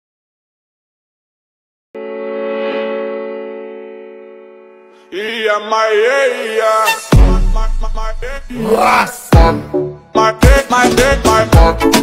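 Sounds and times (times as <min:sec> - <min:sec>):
sustained music chord: 0:02.0 - 0:05.1.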